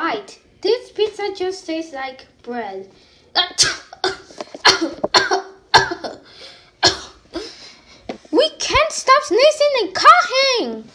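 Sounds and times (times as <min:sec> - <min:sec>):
person coughing: 0:03.4 - 0:07.7.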